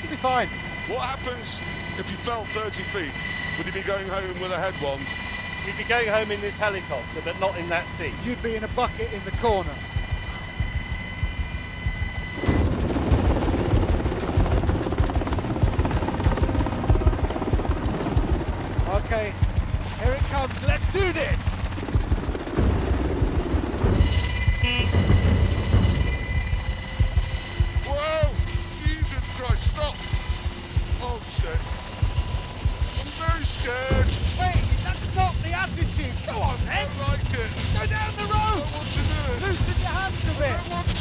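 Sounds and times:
helicopter rotor beating: 0:00.0 - 0:41.0
high turbine whine: 0:00.0 - 0:41.0.

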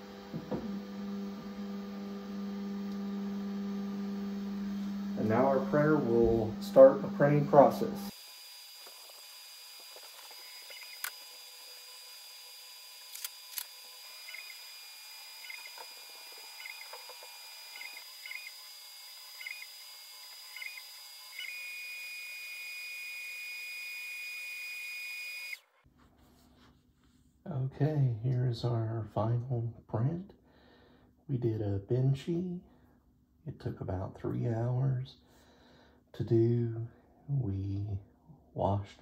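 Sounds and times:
stepper motor whining: 0:00.0 - 0:25.6
sharp clicks: 0:10.2 - 0:11.2, 0:13.0 - 0:14.6.

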